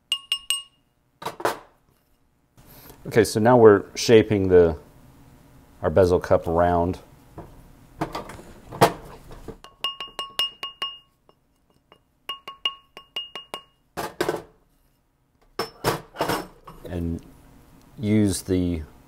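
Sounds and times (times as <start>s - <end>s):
mallet tapping on steel mandrel: 0.1s - 0.8s, 9.6s - 11.1s, 11.9s - 13.8s.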